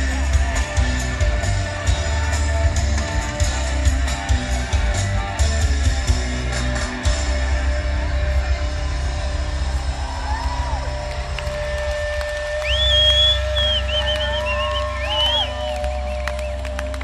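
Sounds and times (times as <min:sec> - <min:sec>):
rock band holding a chord: 0:00.0 - 0:15.2
crowd cheering and whistling: 0:09.1 - 0:17.0
sharp claps: 0:11.1 - 0:17.0.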